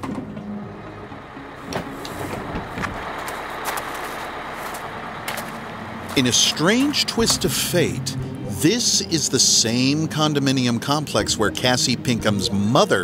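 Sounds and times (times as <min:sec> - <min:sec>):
bus idling: 0:00.0 - 0:13.0.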